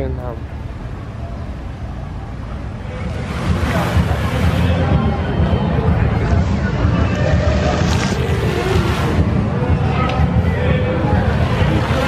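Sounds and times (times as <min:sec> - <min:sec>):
heavy low rumble: 0:00.0 - 0:12.0
people's voices: 0:00.0 - 0:12.0
fountain jets splashing into pool: 0:02.5 - 0:12.0.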